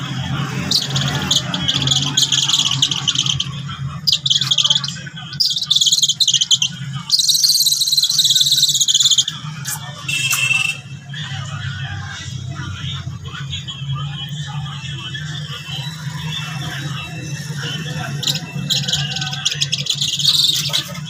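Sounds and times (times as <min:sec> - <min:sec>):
eagle shrill chattering calls: 0:00.5 - 0:10.8, 0:15.4 - 0:21.0.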